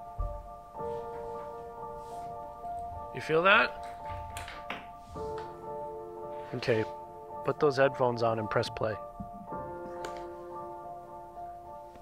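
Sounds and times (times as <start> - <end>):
soft music of sustained chords: 0.0 - 12.0.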